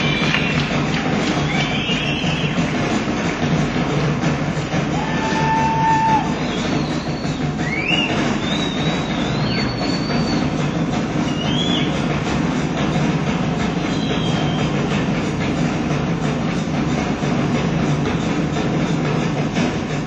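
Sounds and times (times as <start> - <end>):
drum solo: 0.0 - 20.0.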